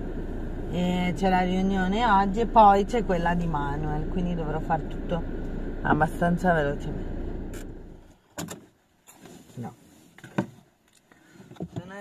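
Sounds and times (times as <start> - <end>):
engine and road rumble in car: 0.0 - 12.0.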